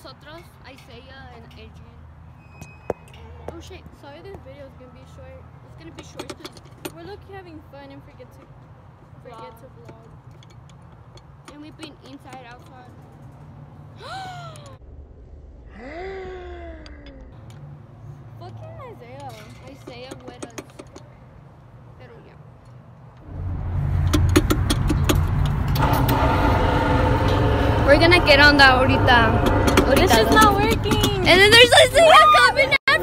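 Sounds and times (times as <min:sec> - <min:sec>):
voices: 0:03.2 - 0:10.2, 0:11.4 - 0:13.1, 0:18.4 - 0:21.3, 0:25.8 - 0:33.0
low background rumble: 0:13.9 - 0:17.6, 0:23.2 - 0:33.0
low steady hum: 0:23.2 - 0:32.7.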